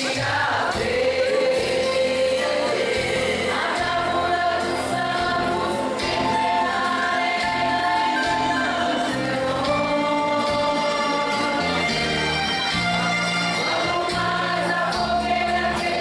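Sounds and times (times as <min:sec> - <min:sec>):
women's choir singing a hymn: 0:00.0 - 0:12.8, 0:13.6 - 0:16.0.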